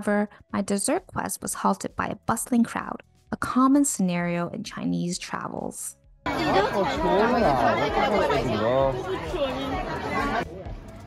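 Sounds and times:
dense crowd chatter: 0:06.3 - 0:11.0.

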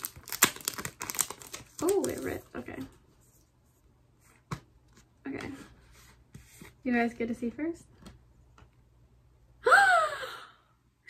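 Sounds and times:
woman gasping in delight: 0:09.6 - 0:10.6.

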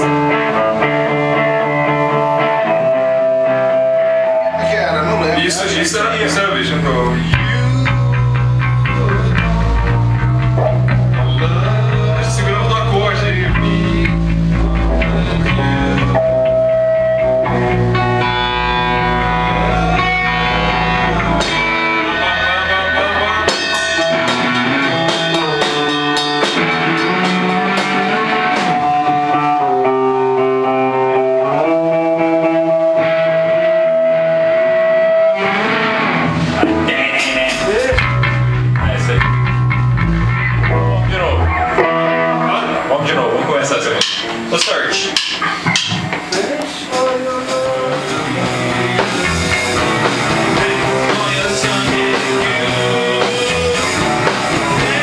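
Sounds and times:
low bass: 0:00.0 - 0:44.6, 0:45.2 - 0:55.0
electric guitar: 0:00.0 - 0:55.0
rock band music: 0:00.0 - 0:55.0
person singing: 0:06.6 - 0:35.8, 0:36.4 - 0:39.5, 0:45.0 - 0:55.0
drum hits: 0:21.1 - 0:22.4, 0:23.0 - 0:28.8, 0:36.3 - 0:39.8, 0:44.0 - 0:47.3.

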